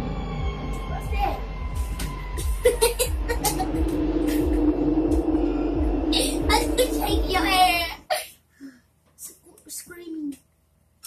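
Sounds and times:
low ambient drone hum: 0:00.0 - 0:08.2.

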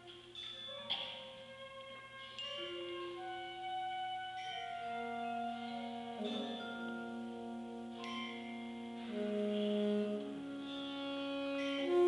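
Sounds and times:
concert band playing sustained chords: 0:03.0 - 0:12.0.

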